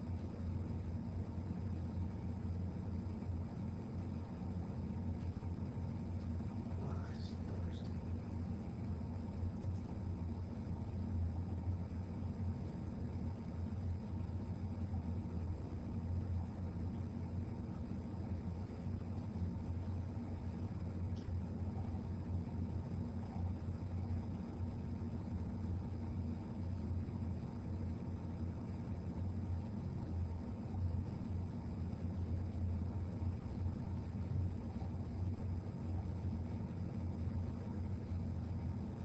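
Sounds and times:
low room hum: 0.0 - 39.0.

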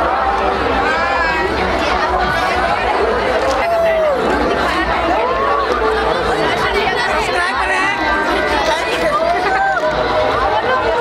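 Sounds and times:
crowd chattering and shouting: 0.0 - 11.0.

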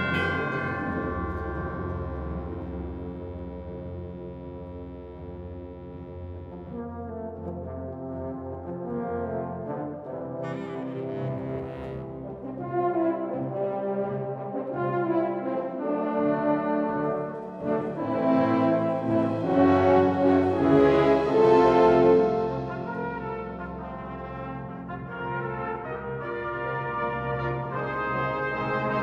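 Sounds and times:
wind band playing brass chords: 0.0 - 3.0, 6.4 - 29.0.

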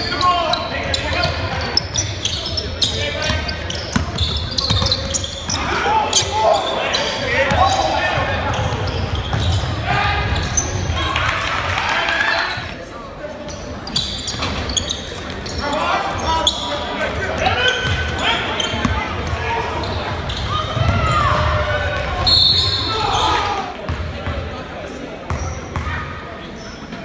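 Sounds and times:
people shouting and talking: 0.0 - 27.0.

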